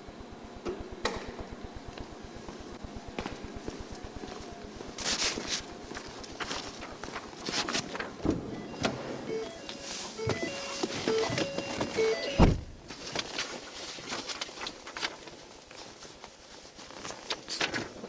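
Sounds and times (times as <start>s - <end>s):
short beeps: 8.6s - 12.5s.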